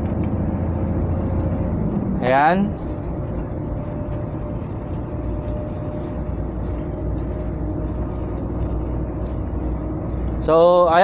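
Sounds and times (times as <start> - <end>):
truck engine drone: 0.0 - 11.0.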